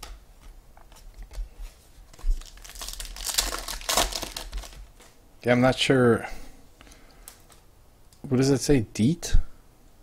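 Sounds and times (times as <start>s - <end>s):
wrapper crinkling and tearing: 2.1s - 5.2s.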